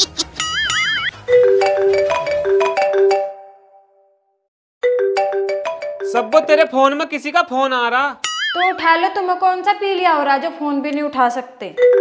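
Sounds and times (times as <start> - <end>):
phone ringtone marimba melody: 0.4 - 3.8, 4.8 - 6.8, 11.8 - 12.0.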